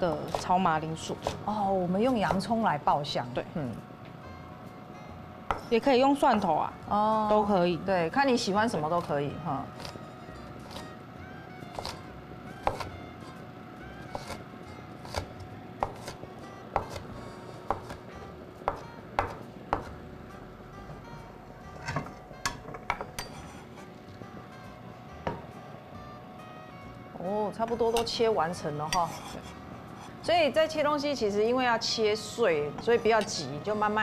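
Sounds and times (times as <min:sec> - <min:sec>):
background music: 0:00.0 - 0:34.0
cleaver chopping on wooden board: 0:12.6 - 0:12.9, 0:15.0 - 0:16.2, 0:16.8 - 0:17.0, 0:17.7 - 0:18.0, 0:18.7 - 0:19.9.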